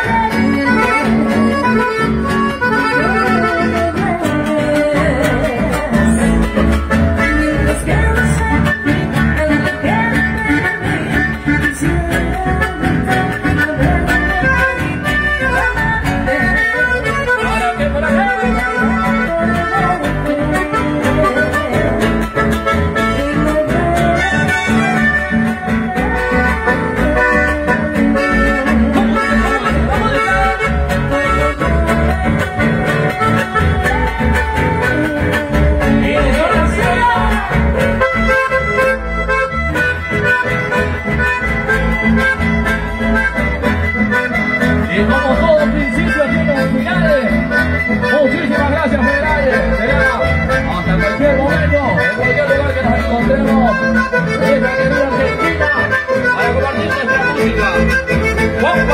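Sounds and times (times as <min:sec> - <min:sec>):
accordion melody: 0:00.0 - 0:58.9
electric bass: 0:00.0 - 0:58.9
guitar: 0:00.0 - 0:58.9.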